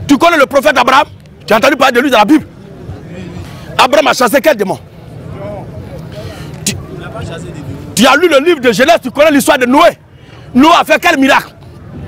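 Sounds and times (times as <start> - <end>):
man speaking loudly: 0.0 - 2.5, 3.8 - 5.7, 6.7 - 11.5
faint background talk: 1.0 - 12.0.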